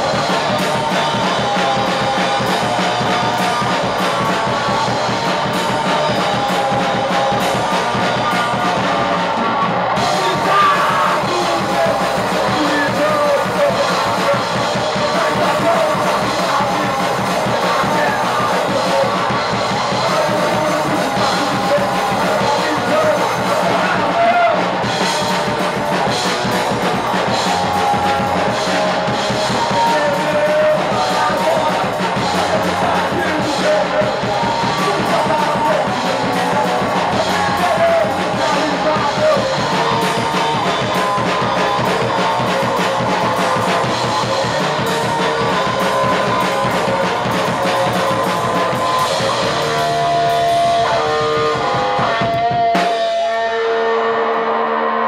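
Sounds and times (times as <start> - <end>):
drum kit: 0.0 - 55.0
electric guitar: 0.0 - 55.0
punk rock band playing live: 0.0 - 55.0.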